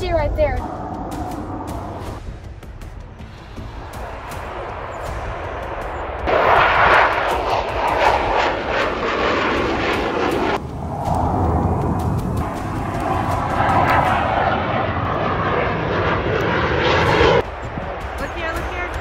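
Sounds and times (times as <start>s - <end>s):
jet engine roar overhead: 0.0s - 19.0s.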